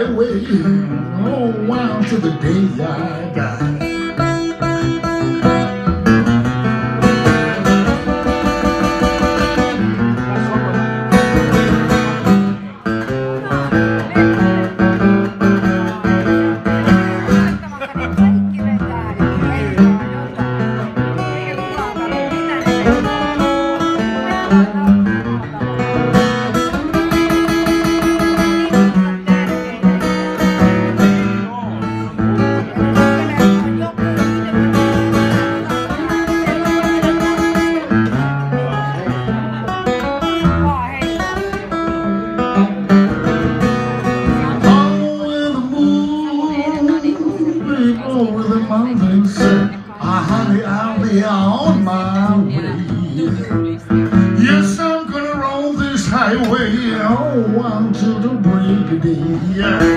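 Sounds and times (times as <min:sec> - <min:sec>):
acoustic guitar blues: 0:00.0 - 0:59.9.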